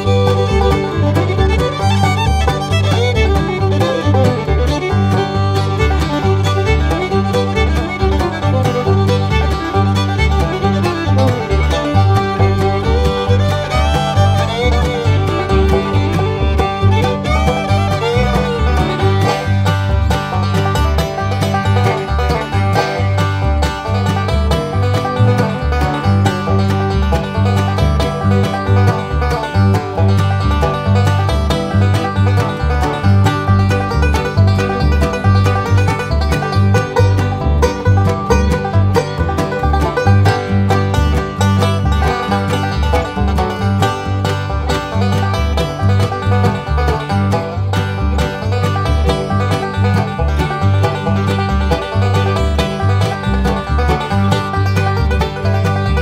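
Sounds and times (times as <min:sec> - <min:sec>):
bluegrass music with banjo and guitar: 0:00.0 - 0:56.0.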